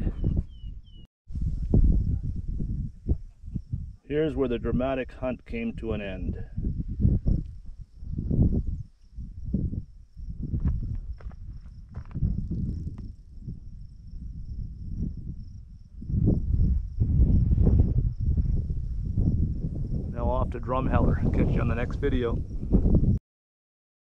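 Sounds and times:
wind buffeting microphone: 0:00.0 - 0:23.2.

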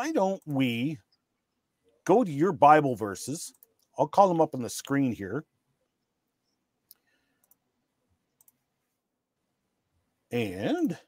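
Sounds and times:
faint computer mouse clicks: 0:06.4 - 0:07.6, 0:08.4 - 0:08.6.

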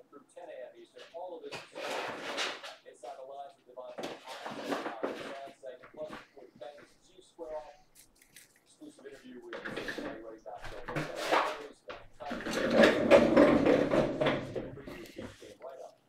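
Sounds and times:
football broadcast commentary: 0:00.0 - 0:16.0.

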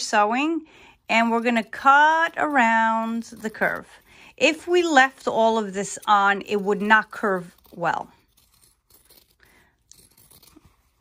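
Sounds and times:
fabric shears cutting fabric: 0:01.2 - 0:11.0.

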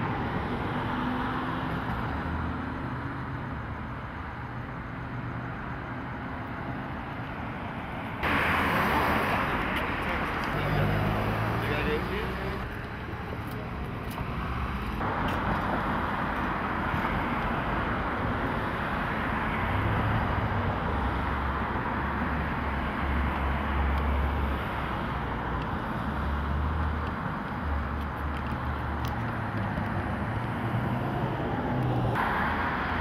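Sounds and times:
traffic rumble: 0:00.0 - 0:33.0.

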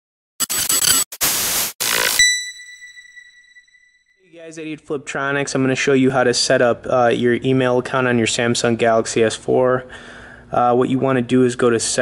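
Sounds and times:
harsh digital static glitch: 0:00.4 - 0:02.6.

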